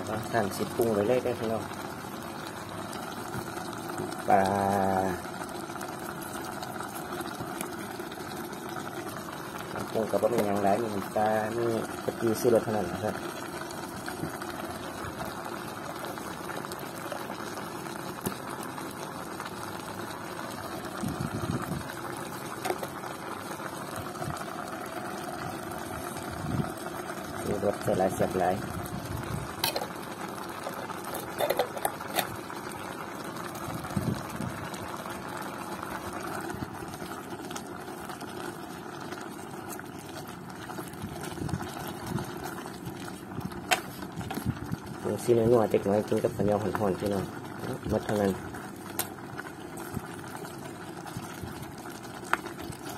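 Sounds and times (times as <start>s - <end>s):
stew bubbling in a pot: 0.0s - 52.9s.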